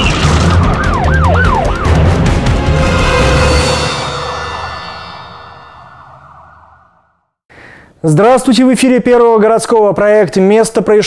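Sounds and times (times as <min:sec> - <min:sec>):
news theme music: 0:00.0 - 0:06.5.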